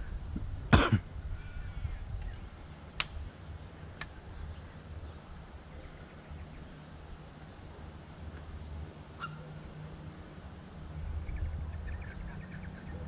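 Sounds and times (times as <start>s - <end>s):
wind rumble on microphone: 0.0s - 7.3s, 10.8s - 13.0s
person coughing: 0.7s - 1.0s.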